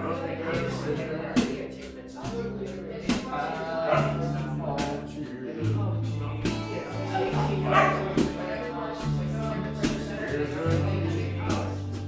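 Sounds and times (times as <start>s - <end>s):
acoustic country music: 0.0s - 12.0s.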